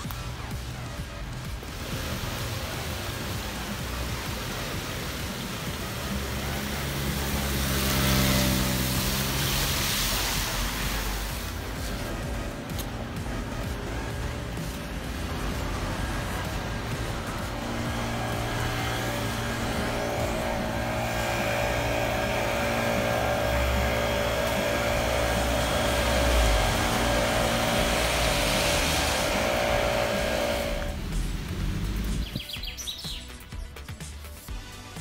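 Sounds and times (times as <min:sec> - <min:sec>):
steady music bed: 0:00.0 - 0:35.0
tyre hiss from passing cars: 0:00.2 - 0:32.4.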